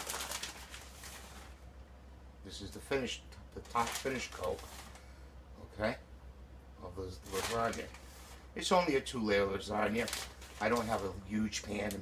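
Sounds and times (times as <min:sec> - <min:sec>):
plastic bag rustling: 0:00.0 - 0:01.7, 0:03.6 - 0:05.1, 0:07.2 - 0:08.8, 0:09.5 - 0:12.0
shredded cheese pattering: 0:09.8 - 0:12.0.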